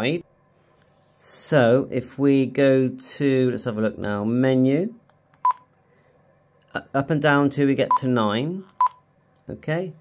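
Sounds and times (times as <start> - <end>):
keypad beep: 5.4 - 5.6.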